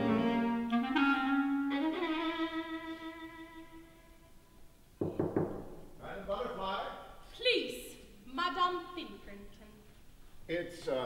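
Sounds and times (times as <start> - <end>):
quick knocks: 5.0 - 5.9.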